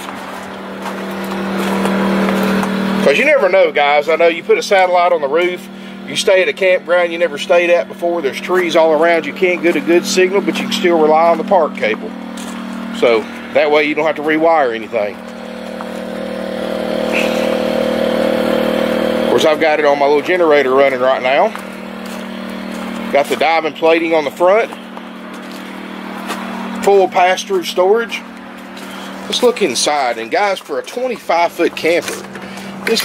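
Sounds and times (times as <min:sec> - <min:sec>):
generator engine running: 0:00.0 - 0:33.0.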